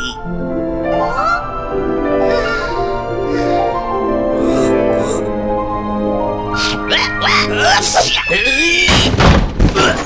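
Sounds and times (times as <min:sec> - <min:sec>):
wordless vocal cries: 0:06.5 - 0:09.0
thuds on wooden floor: 0:08.9 - 0:10.0.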